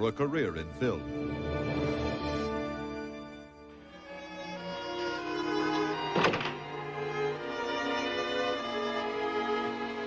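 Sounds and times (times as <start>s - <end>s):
orchestral strings sustained notes: 0.0s - 10.0s
loud thump: 6.2s - 6.7s.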